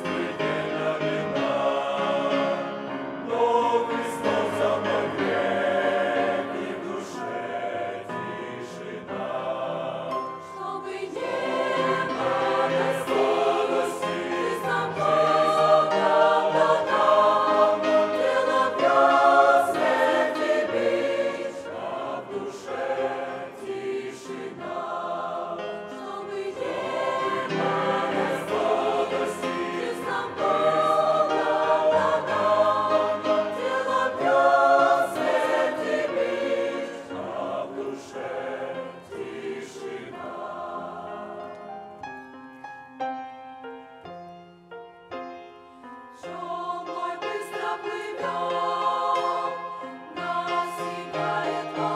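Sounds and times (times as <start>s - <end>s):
choir singing a hymn: 0.0s - 42.3s, 45.5s - 51.9s.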